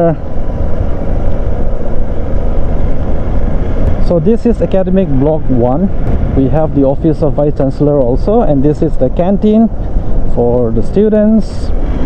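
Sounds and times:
motorcycle engine and wind noise: 0.0s - 12.0s.

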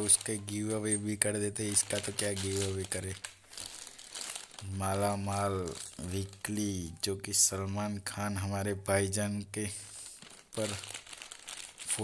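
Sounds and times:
plastic chips packet crinkling: 0.0s - 7.5s, 9.8s - 12.0s.

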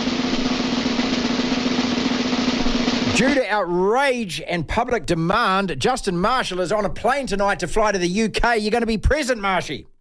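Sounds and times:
snare drum roll: 0.0s - 3.6s.

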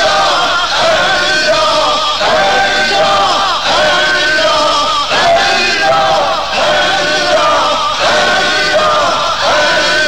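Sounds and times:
men chanting together: 0.0s - 10.0s.

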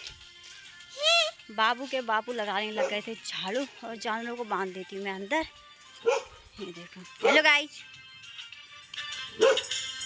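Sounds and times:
background music: 0.0s - 10.0s
dog barking: 2.8s - 3.0s, 6.0s - 6.3s, 9.4s - 9.7s.

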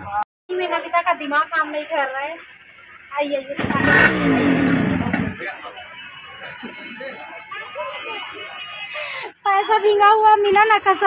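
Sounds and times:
vehicle engine passing by: 3.6s - 5.8s.

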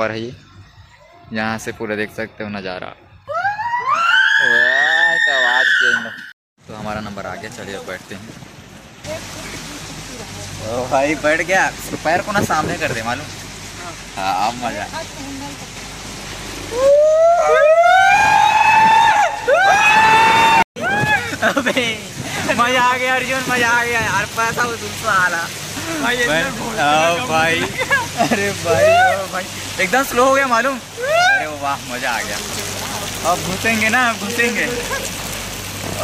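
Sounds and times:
riders screaming: 3.3s - 6.3s, 16.7s - 21.5s, 28.6s - 29.4s, 31.0s - 31.6s
voices talking: 21.0s - 36.0s.

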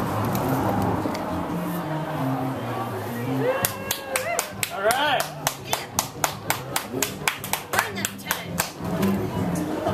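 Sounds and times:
rhythmic hand clapping: 3.6s - 9.7s.

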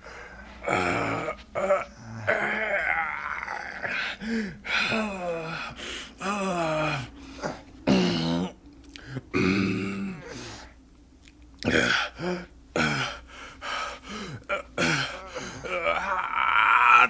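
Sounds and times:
men grunting and groaning: 0.6s - 7.1s, 14.5s - 17.0s.

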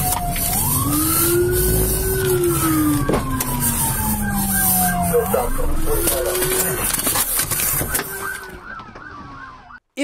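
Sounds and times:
police sirens wailing and yelping: 0.0s - 9.8s
road noise: 0.0s - 10.0s.

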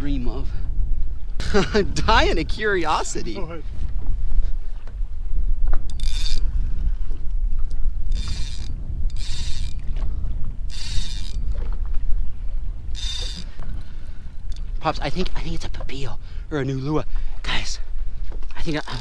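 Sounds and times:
wind rumble on microphone: 0.0s - 19.0s
fishing reel whirring: 5.9s - 6.9s, 7.7s - 10.0s, 10.6s - 11.6s, 12.9s - 13.6s, 18.8s - 19.0s.

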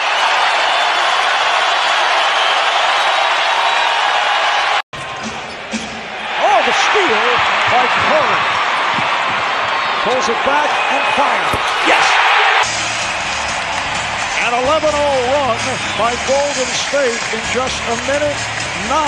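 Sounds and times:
arena crowd noise: 0.0s - 19.0s.

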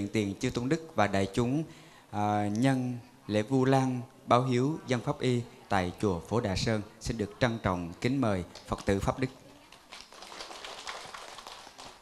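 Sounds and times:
light audience applause: 9.6s - 12.0s.

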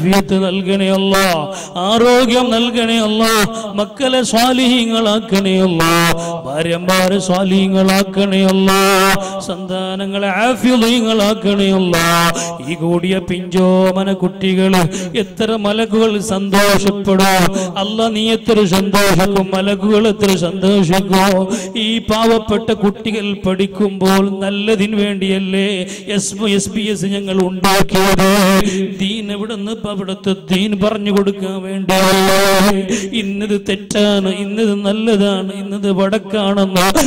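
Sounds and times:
man chanting a recitation: 0.0s - 37.0s.

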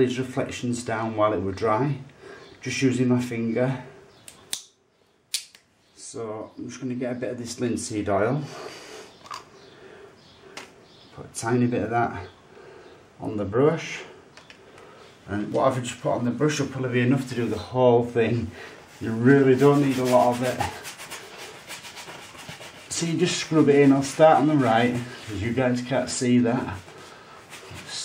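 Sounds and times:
brush scrubbing over canvas: 18.9s - 28.0s.

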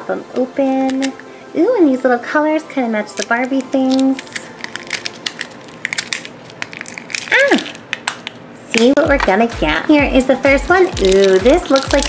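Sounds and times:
plastic wrappers crinkling: 3.1s - 9.7s, 10.6s - 12.0s.

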